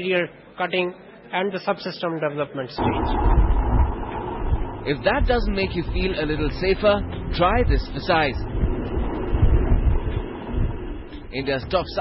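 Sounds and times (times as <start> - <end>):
rocket motor rumble: 2.8 - 12.0.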